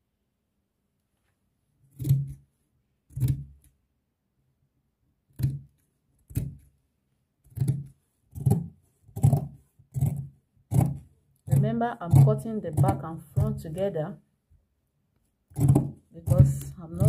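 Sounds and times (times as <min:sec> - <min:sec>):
scissors snipping fabric: 0:01.9 - 0:02.5, 0:03.1 - 0:03.8, 0:05.3 - 0:06.8, 0:07.4 - 0:13.8, 0:15.5 - 0:17.0.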